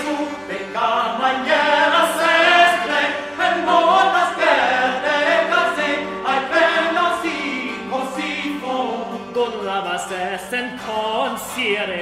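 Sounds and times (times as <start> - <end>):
voices singing chant: 0.0 - 9.6.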